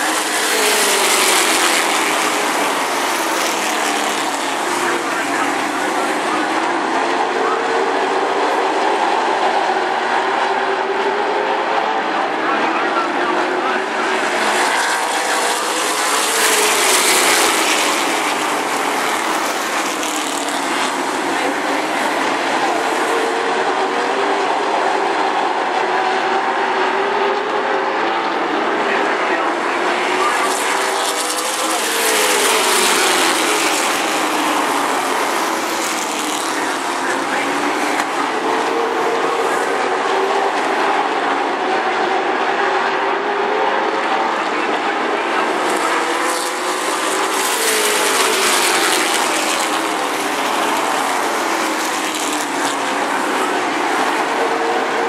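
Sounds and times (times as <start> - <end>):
stock cars racing past: 0.0 - 55.0.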